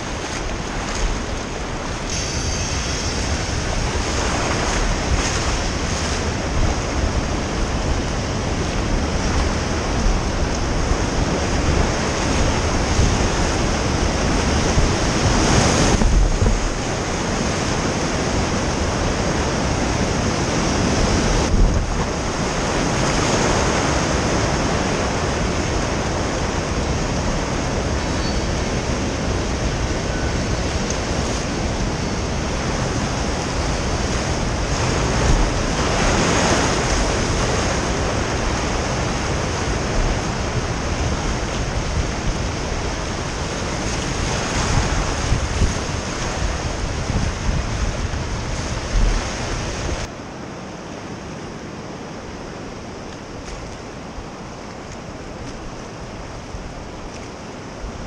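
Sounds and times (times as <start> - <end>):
wind buffeting microphone: 0.0 - 50.1
whitewater rushing: 0.0 - 58.0.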